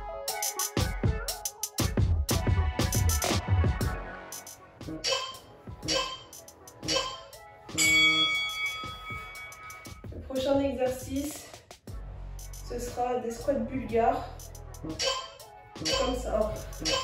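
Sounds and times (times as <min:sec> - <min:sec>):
workout music: 0:00.0 - 0:17.0
ringing chime: 0:07.8 - 0:10.0.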